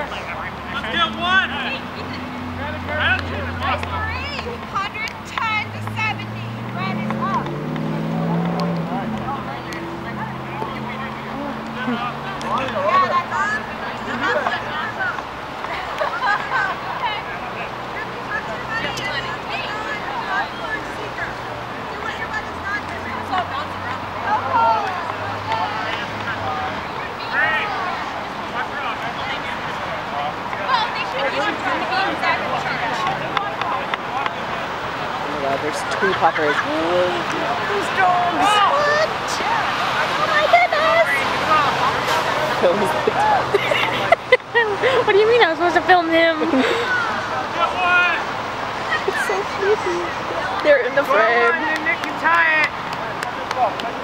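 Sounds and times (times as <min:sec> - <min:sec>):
engine droning: 0:00.0 - 0:15.6
distant voices shouting: 0:00.0 - 0:54.0.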